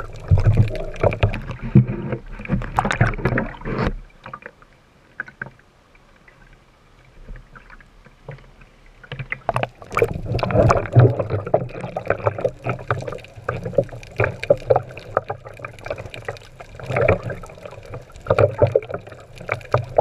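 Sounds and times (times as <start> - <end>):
muffled underwater bubbling: 0.0 - 3.9, 9.2 - 20.0
water splashing: 0.0 - 4.6, 7.2 - 20.0
small underwater clicks: 0.0 - 20.0.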